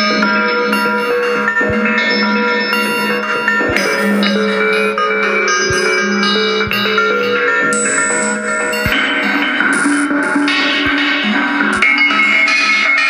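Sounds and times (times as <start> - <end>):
synth notes: 0.0 - 13.0
drum machine beat: 1.4 - 12.5.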